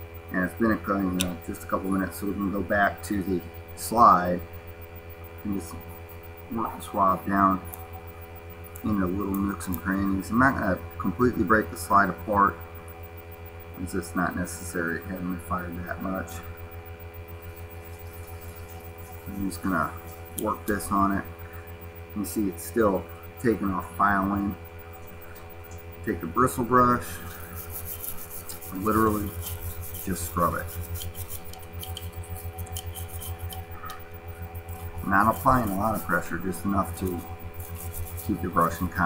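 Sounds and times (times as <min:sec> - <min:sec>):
electrical mains hum: 0:00.0 - 0:39.0
bristle brush scrubbing metal: 0:17.5 - 0:21.3, 0:26.0 - 0:39.0.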